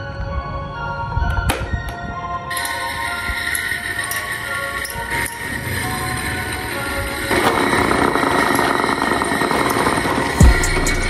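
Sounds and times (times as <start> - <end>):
background music: 0.0 - 11.0
electric fans whirring: 0.2 - 11.0.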